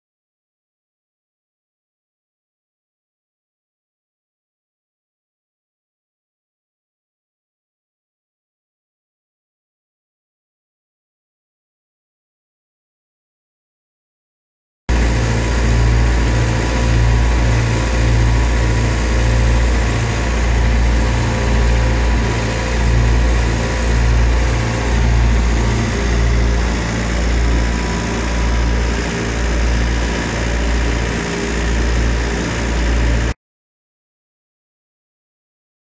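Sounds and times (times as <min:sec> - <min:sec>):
engine running: 0:14.9 - 0:33.4.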